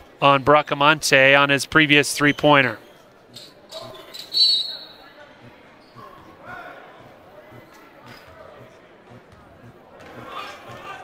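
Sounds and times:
indoor crowd murmur: 0.0s - 0.2s, 1.6s - 11.0s
high-pitched squeak: 3.3s - 5.1s.

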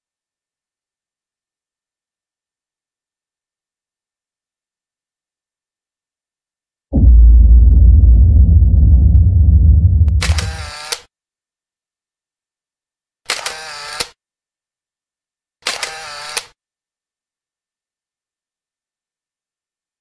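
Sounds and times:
deep rumble: 6.9s - 10.7s.

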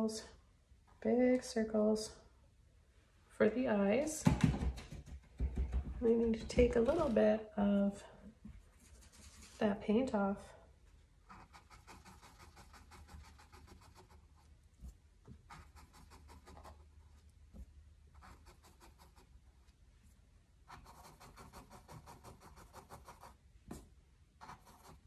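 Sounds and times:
paintbrush scratching on canvas: 8.7s - 9.6s, 11.2s - 17.3s, 18.1s - 19.4s, 20.7s - 23.4s, 24.4s - 25.0s.

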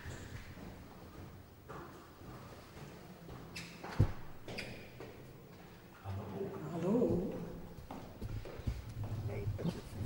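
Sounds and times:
footsteps on stone tiles: 6.9s - 10.0s.

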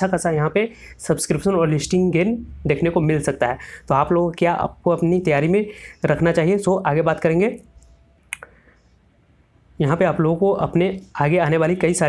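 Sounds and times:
man talking: 0.0s - 7.8s, 9.8s - 12.0s.

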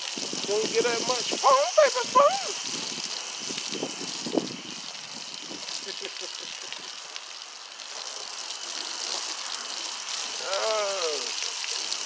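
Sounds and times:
foam gun spray hissing on car: 0.0s - 12.0s.

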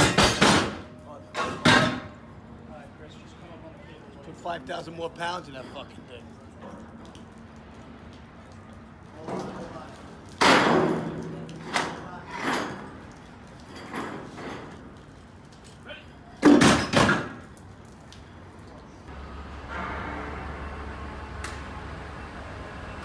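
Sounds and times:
bangs on steel beams: 0.0s - 2.1s.

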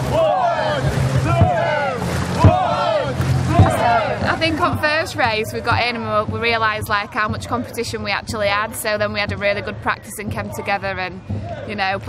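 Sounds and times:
low drum beat: 0.0s - 12.0s
paddles splashing in water: 0.0s - 12.0s
people shouting: 0.0s - 12.0s.

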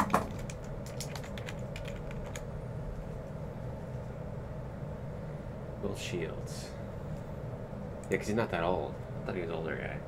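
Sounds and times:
computer keyboard typing: 0.0s - 2.5s
low room hum: 0.0s - 10.0s.

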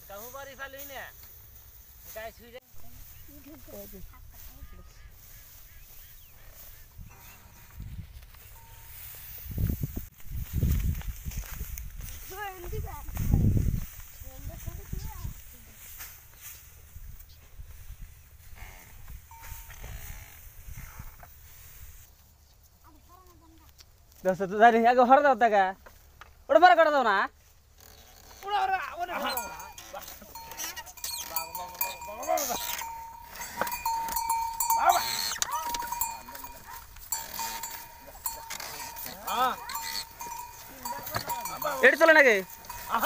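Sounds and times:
farm animals calling: 3.0s - 9.0s, 29.0s - 43.0s
steady high ringing tone: 7.0s - 9.7s, 19.3s - 20.2s, 29.2s - 43.0s.

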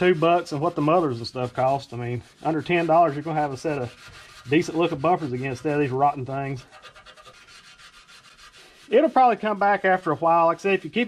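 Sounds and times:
steel wool scrubbing metal: 0.0s - 11.0s.

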